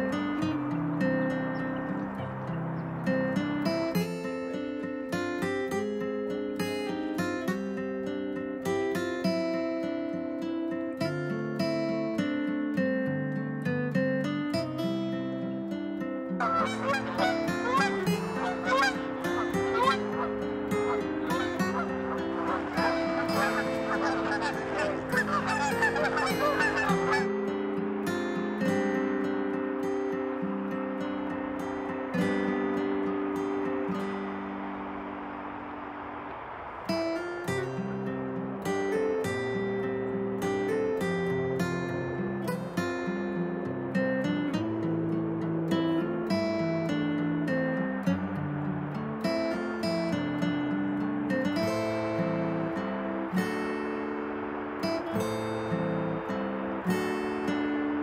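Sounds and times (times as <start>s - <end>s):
instrumental music with plucked strings: 0.0s - 35.0s
geese honking: 16.4s - 27.8s.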